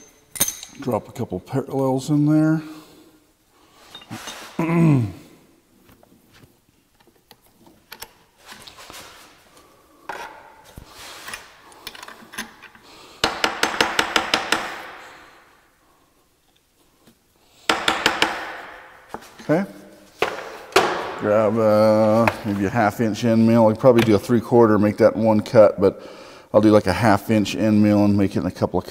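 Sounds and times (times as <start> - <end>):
metal parts clinking and scraping: 0.0 - 0.9, 3.8 - 4.6, 11.2 - 12.8.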